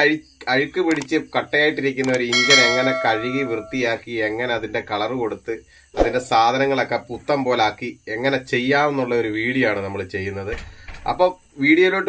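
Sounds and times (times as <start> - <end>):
bell-like chime: 2.3 - 4.0.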